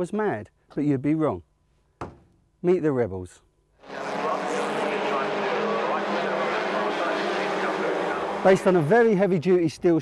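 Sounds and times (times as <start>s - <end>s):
racing car engines: 3.8s - 9.3s.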